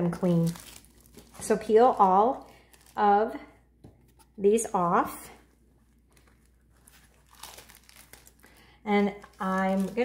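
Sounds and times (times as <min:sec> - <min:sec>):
plastic liner crinkling: 0:00.0 - 0:10.0.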